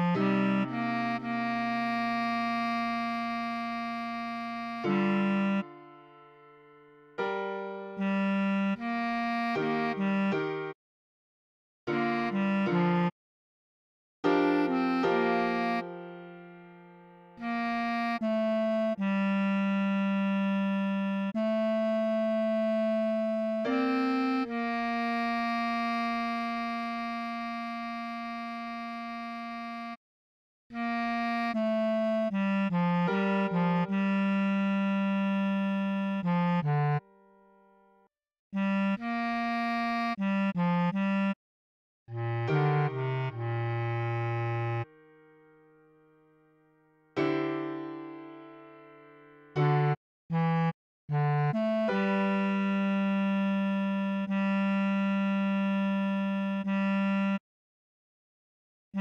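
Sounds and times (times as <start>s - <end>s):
bass clarinet holding note: 0.0s - 6.4s, 7.2s - 10.7s, 11.9s - 13.1s, 14.4s - 30.0s, 30.7s - 37.1s, 38.6s - 41.4s, 42.1s - 45.3s, 47.2s - 57.4s.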